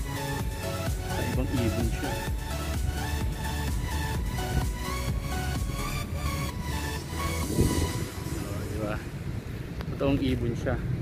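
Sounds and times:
background music: 0.0s - 9.6s
low rumbling noise: 0.0s - 11.0s.

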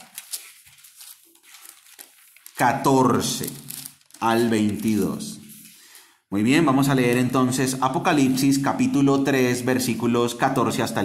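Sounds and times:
thin pages rustling: 0.0s - 6.0s.

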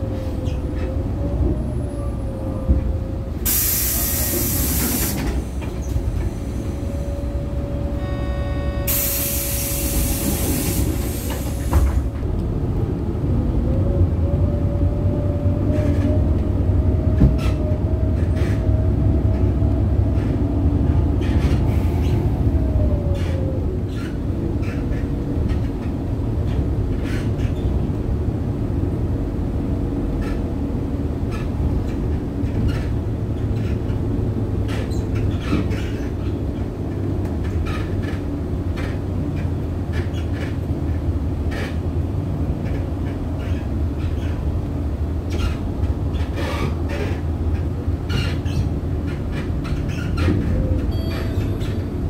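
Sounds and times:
bus engine and road rumble: 0.0s - 52.0s
hissing air bursts: 3.5s - 5.2s, 8.9s - 11.9s.

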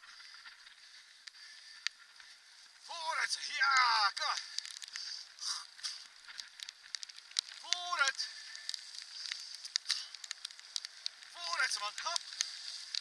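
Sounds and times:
bicycle tyres on dirt track: 0.0s - 13.0s
small clicks and rattles: 0.0s - 13.0s
wordless voice calls: 7.6s - 8.4s, 11.3s - 12.3s.

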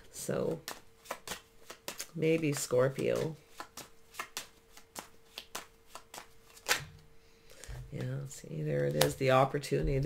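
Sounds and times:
cards being shuffled: 0.4s - 10.0s
card snap: 3.0s - 7.0s.

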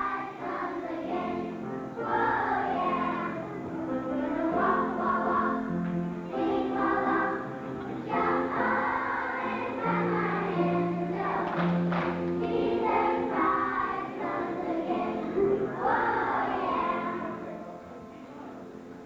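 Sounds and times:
children's choir singing: 0.0s - 18.2s.

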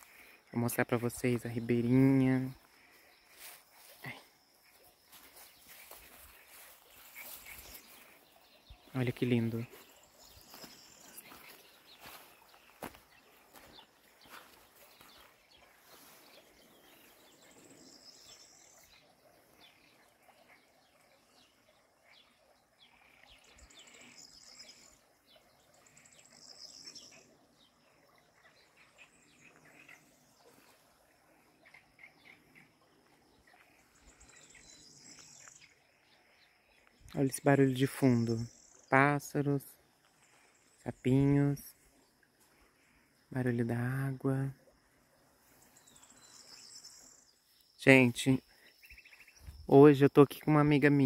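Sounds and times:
birds chirping: 0.0s - 51.0s
frogs calling: 0.0s - 51.0s
small stream: 0.0s - 51.0s.

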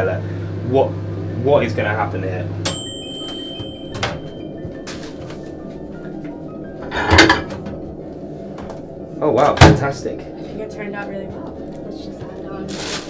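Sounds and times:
microwave beep tone: 2.6s - 6.6s
plate clattering: 6.8s - 7.7s.

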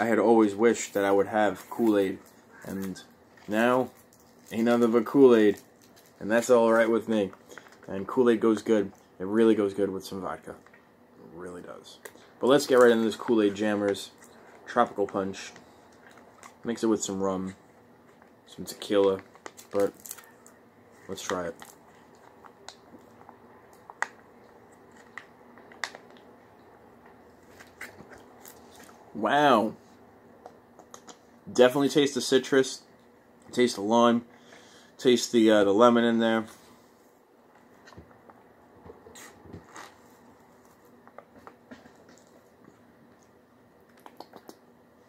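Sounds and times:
faint mouth clicks: 43.9s - 44.6s.

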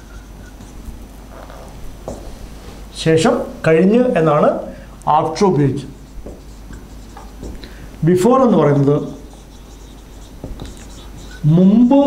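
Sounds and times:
marker writing on whiteboard: 0.0s - 2.5s, 3.1s - 12.0s.

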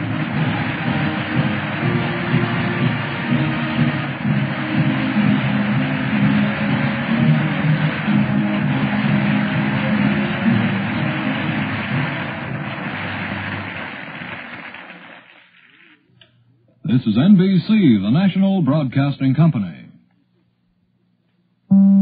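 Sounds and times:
orchestral theme music: 0.0s - 13.9s.

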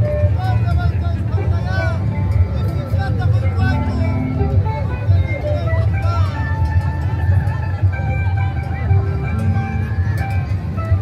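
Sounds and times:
carnival music: 0.0s - 11.0s
crowd voices and shouts: 0.0s - 11.0s.

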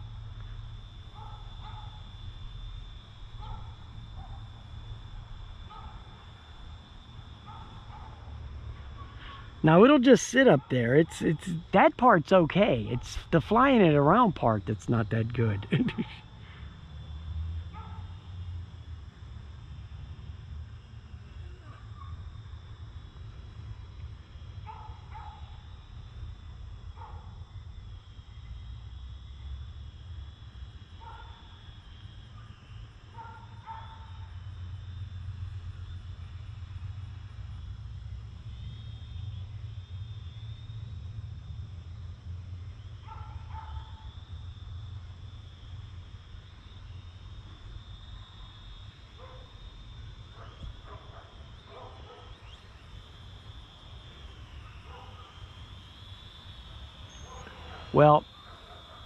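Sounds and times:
quadcopter motors whining: 0.0s - 24.7s, 25.4s - 59.0s.

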